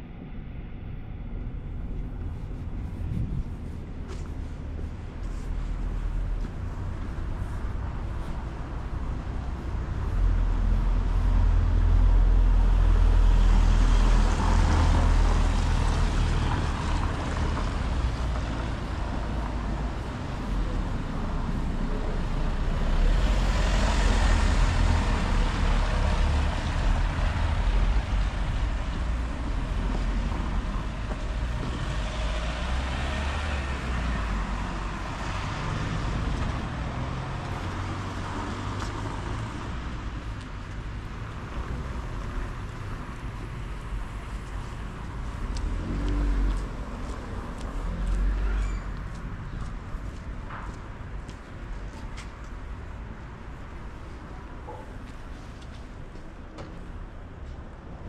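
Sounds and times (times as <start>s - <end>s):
low steady rumble: 0.0s - 13.1s
vehicles passing on wet road: 3.6s - 58.0s.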